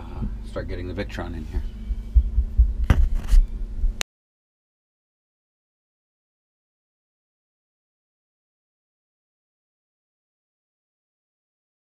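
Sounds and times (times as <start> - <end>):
faint steady hum: 0.0 - 4.0
sharp knock: 2.8 - 3.4
camera handling bumps and rubbing: 2.8 - 3.5.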